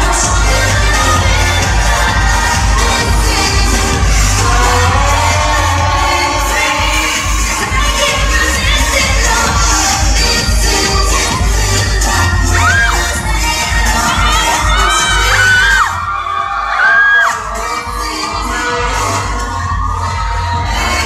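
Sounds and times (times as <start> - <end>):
crowd shouting and cheering: 0.0 - 21.0
loud music with bass beat: 0.0 - 21.0
high held screams: 13.8 - 21.0.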